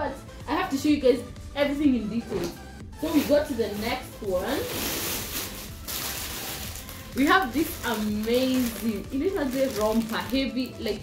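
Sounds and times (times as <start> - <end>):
plastic packaging crinkling: 3.0 - 11.0.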